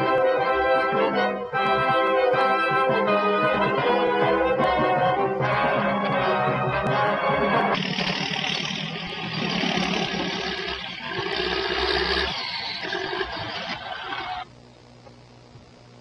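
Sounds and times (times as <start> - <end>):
brass orchestral music: 0.0 - 7.8
heavy earthmoving machinery running: 7.8 - 14.0
faint hum: 7.8 - 16.0.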